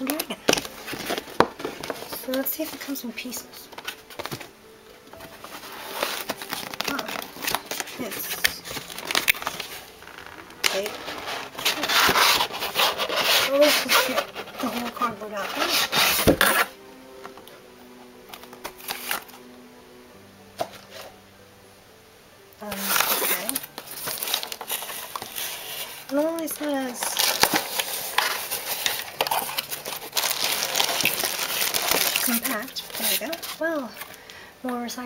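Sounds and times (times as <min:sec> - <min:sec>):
cardboard packaging rubbing and scraping: 0:00.0 - 0:04.5, 0:05.2 - 0:16.8, 0:18.3 - 0:19.4, 0:22.6 - 0:34.2.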